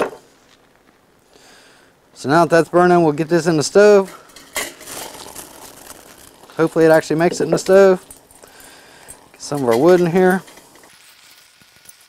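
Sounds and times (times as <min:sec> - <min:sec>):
wood shavings clattering into stove: 0:02.6 - 0:10.9.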